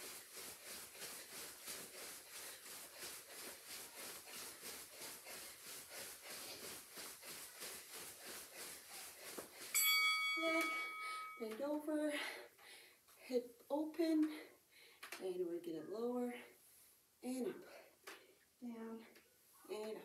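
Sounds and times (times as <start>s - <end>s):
footsteps jogging on carpet: 0.0s - 11.4s.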